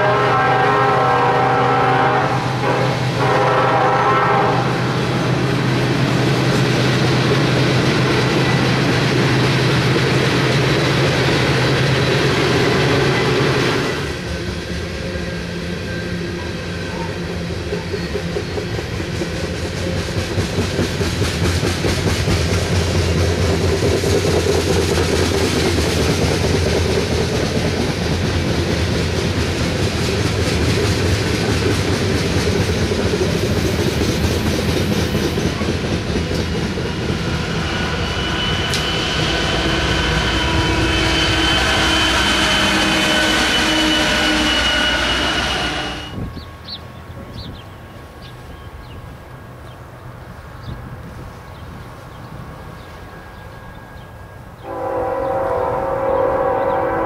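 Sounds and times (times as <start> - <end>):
freight train rumbling past: 0.0 - 57.0.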